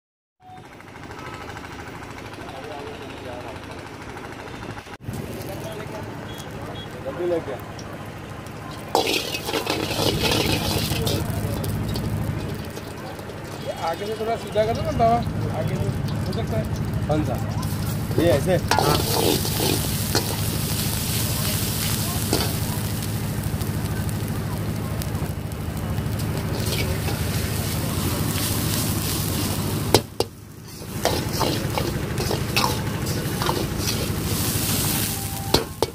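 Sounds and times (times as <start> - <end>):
gas burner roar: 0.6 - 35.9
indistinct voices: 5.3 - 35.9
garlic sizzling in hot oil: 8.4 - 35.9
rapid mechanical rattle: 8.7 - 20.7, 21.3 - 34.9
metal ladle scraping pan: 8.8 - 13.9, 17.7 - 20.7, 26.5 - 35.9.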